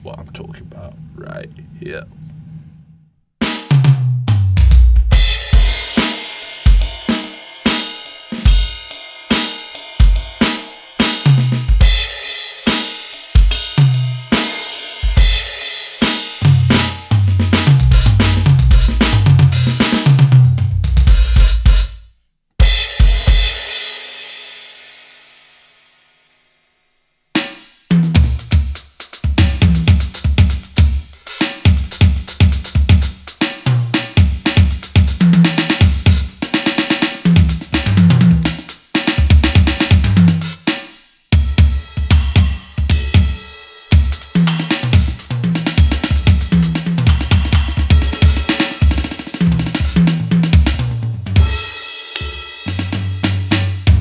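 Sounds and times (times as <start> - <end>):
electronic drum groove: 4.7 - 22.0, 22.6 - 23.7, 27.4 - 54.0
cymbal ringing out: 5.2 - 17.0, 41.4 - 50.0, 51.4 - 54.0.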